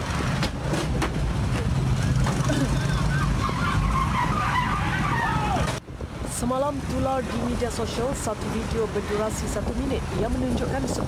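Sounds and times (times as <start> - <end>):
motorcycle and car engines: 0.0 - 11.0.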